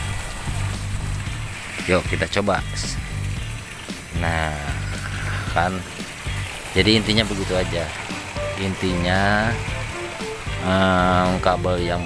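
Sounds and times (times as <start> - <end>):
background music with bass line: 0.0 - 12.0
water churning in washing machine: 0.0 - 12.0.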